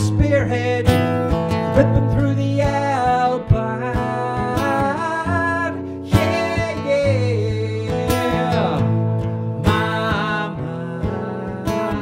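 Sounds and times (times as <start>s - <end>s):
acoustic guitar strummed: 0.0s - 12.0s.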